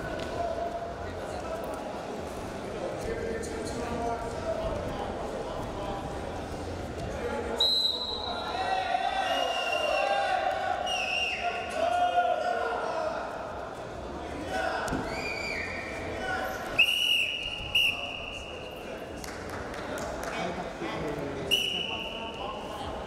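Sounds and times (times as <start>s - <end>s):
referee's whistle: 7.6s - 8.4s, 10.8s - 11.6s, 16.8s - 18.5s, 21.5s - 22.2s.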